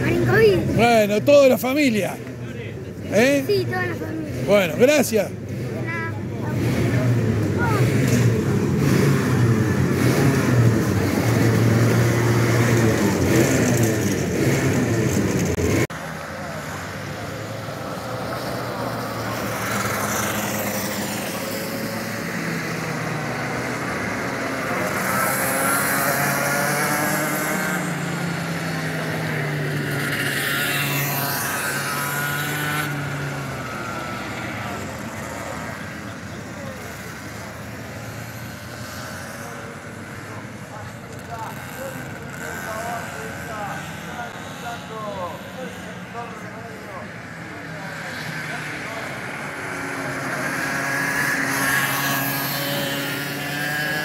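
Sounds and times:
kart engine running loudly: 0:00.0 - 0:54.0
kart engines on track: 0:00.0 - 0:54.0.

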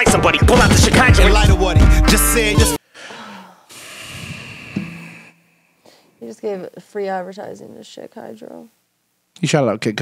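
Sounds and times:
person exhaling hard: 0:02.8 - 0:06.2.

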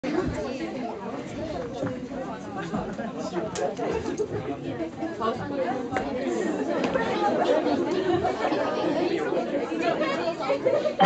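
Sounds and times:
chatter of voices: 0:00.0 - 0:11.0.

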